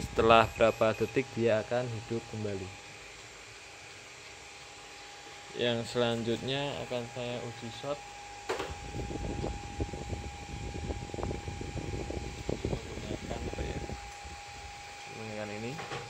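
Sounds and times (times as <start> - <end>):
power inverter whine: 0.0 - 16.0.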